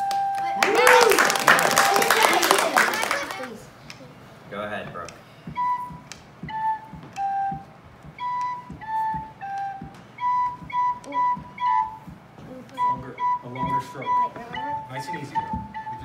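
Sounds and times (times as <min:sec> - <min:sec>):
small pipe organ tune: 0:05.4 - 0:12.2, 0:12.8 - 0:16.0.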